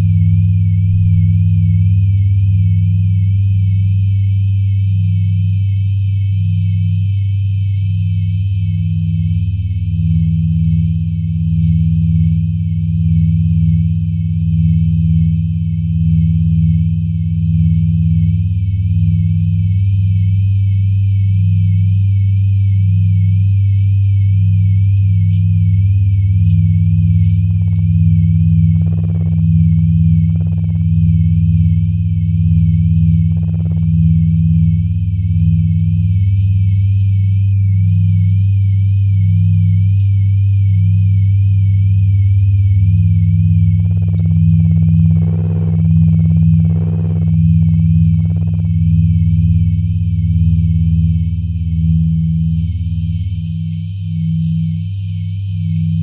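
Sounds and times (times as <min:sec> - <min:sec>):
electronic drone music: 0:41.6 - 0:56.0.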